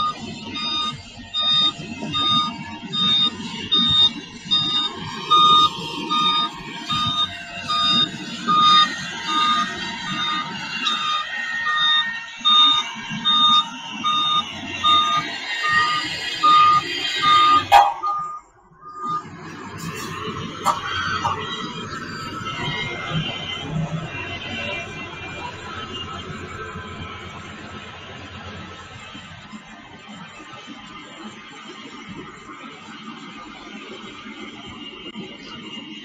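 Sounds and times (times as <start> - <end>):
diesel engine rumble: 0.0 - 36.0
reversing alarm beeping: 0.0 - 36.0.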